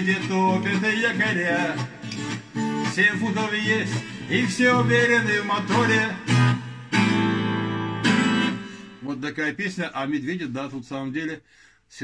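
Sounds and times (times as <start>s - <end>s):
twelve-string guitar chords: 0.0s - 9.2s.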